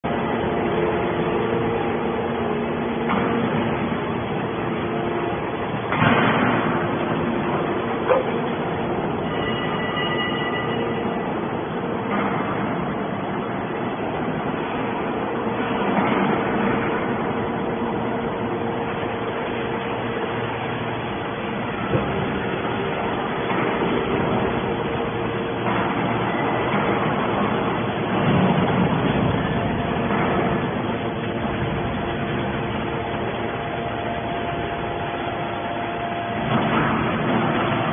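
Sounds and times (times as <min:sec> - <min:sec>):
hydraulic baler humming: 0:00.0 - 0:37.9.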